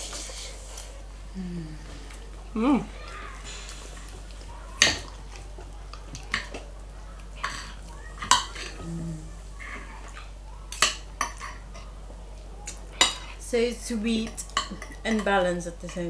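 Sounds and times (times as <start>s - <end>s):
cutlery clinking on ceramic plate: 7.4s - 8.8s, 10.7s - 11.9s.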